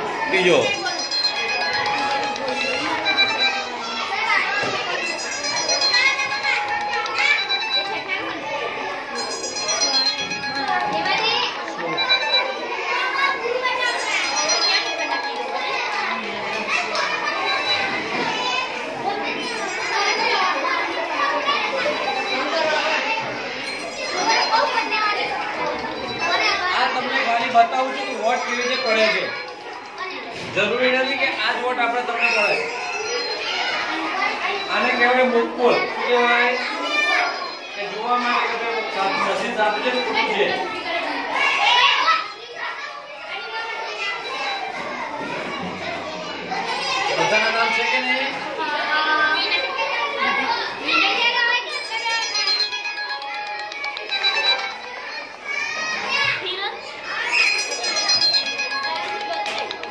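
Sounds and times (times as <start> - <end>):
children chattering: 0.0 - 59.9.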